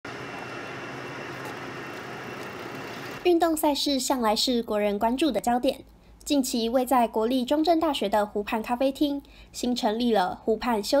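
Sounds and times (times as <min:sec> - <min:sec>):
outdoor background hum and hiss: 0:00.1 - 0:11.0.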